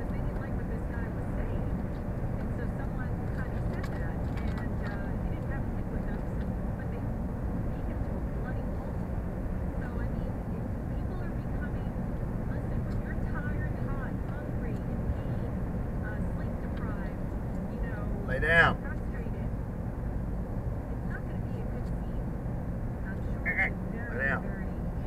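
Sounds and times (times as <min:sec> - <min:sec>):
faint voices: 0:00.0 - 0:09.0, 0:09.8 - 0:19.5, 0:21.0 - 0:22.3, 0:23.0 - 0:25.0
car road and engine rumble: 0:00.0 - 0:25.0.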